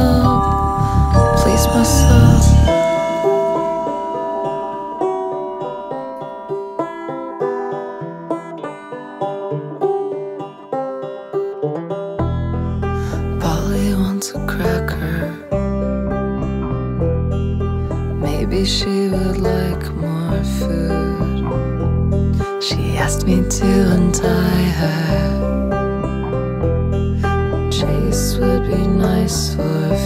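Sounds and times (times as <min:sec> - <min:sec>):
deep sustained bass pedal notes: 0:00.0 - 0:06.5, 0:12.3 - 0:30.0
banjo picking single notes: 0:00.0 - 0:30.0.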